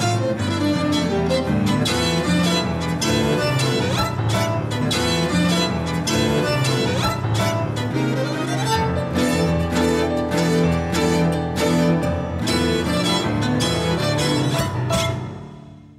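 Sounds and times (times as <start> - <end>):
classical chamber music: 0.0 - 15.9.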